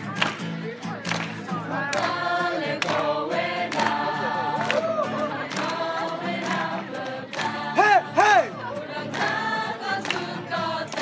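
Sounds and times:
group singing in unison: 1.6 - 11.0.

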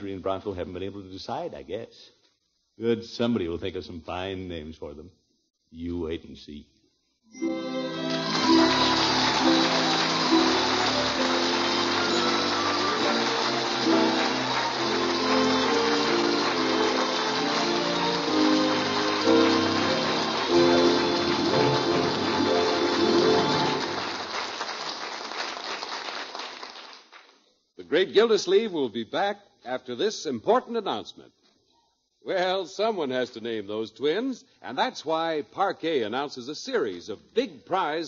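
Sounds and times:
melodic music bridge: 7.4 - 24.3.

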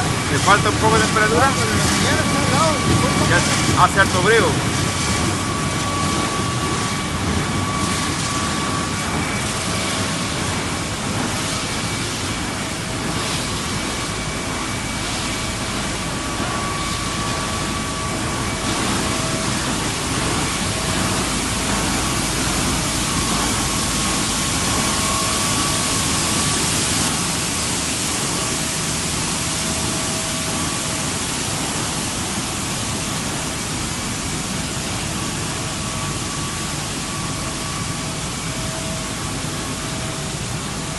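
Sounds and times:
faint high whine: 0.0 - 40.9
production line machinery running: 0.0 - 40.9.

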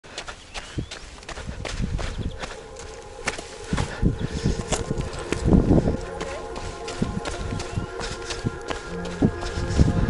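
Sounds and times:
footsteps on gravel: 0.1 - 10.0.

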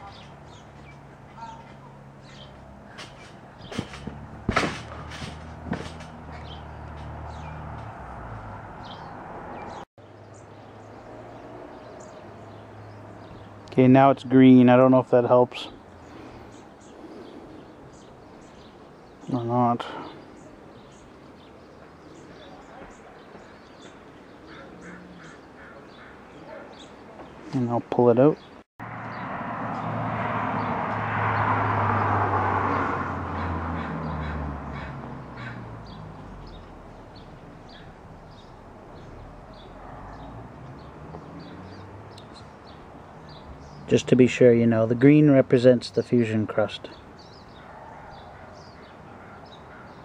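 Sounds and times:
small birds chirping: 0.0 - 4.3, 4.9 - 29.9, 33.4 - 50.0
sharp knocks: 3.0 - 7.9
short repeated bird calls: 22.0 - 27.0.

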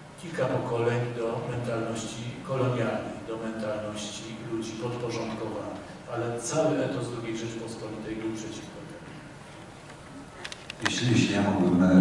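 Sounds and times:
man speaking: 0.2 - 9.1, 10.8 - 12.0
microphone handling clicks: 9.5 - 11.0.

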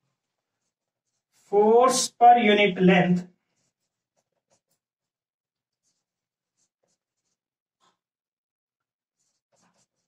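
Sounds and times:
marker pen writing on whiteboard: 0.0 - 2.2, 2.8 - 10.0.

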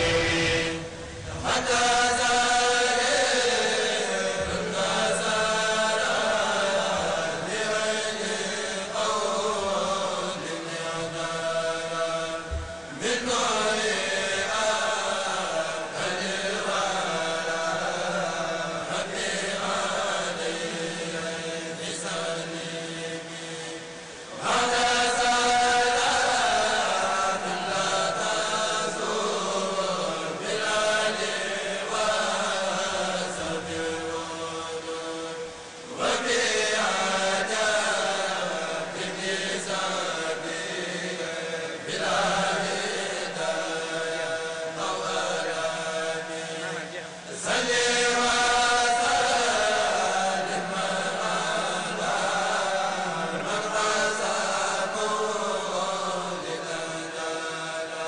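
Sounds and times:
men chanting in unison: 0.0 - 58.0.

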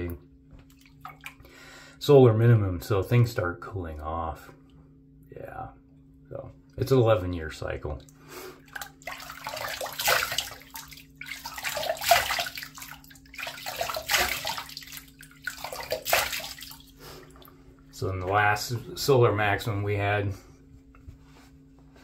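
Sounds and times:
steady low hum: 0.0 - 22.0
water splashing onto face: 8.0 - 17.5.

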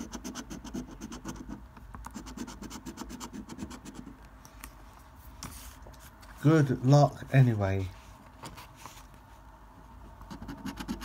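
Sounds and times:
coin scratching a scratchcard: 0.0 - 4.2, 10.3 - 11.0.

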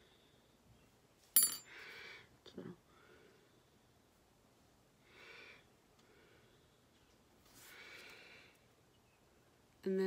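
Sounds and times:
soft rustle: 6.9 - 8.2.

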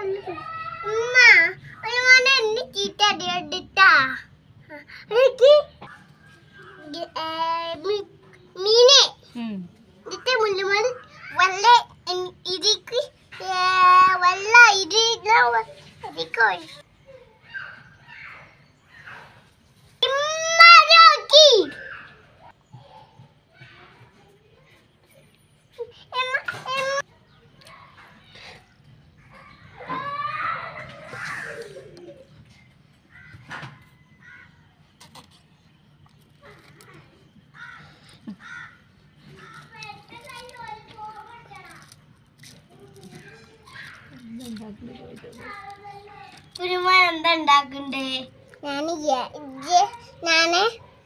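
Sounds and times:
crow cawing: 33.1 - 33.5, 34.2 - 34.6, 37.5 - 39.6.

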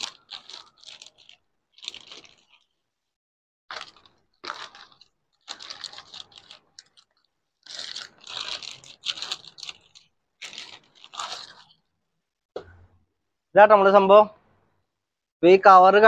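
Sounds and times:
plastic bag crinkling: 0.0 - 2.9, 3.7 - 12.1.

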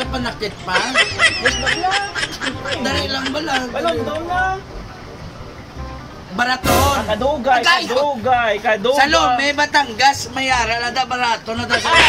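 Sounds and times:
men talking: 0.0 - 12.0
men laughing: 0.4 - 4.6, 11.6 - 12.0.

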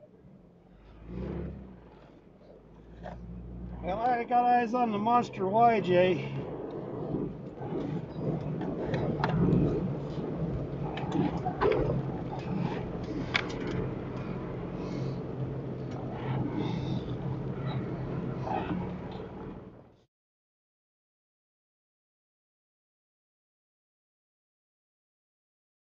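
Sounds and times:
car engine running: 0.0 - 20.0
tyre and road noise: 0.0 - 20.0.

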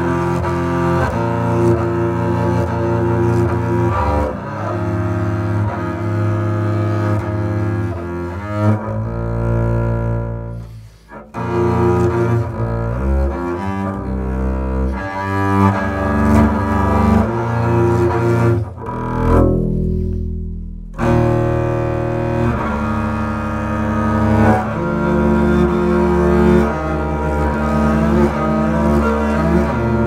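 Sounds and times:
bowed double bass: 0.0 - 30.0.

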